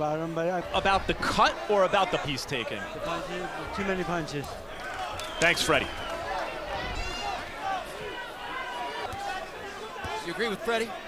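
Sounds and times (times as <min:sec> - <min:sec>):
indistinct crowd voices: 0:00.0 - 0:11.0.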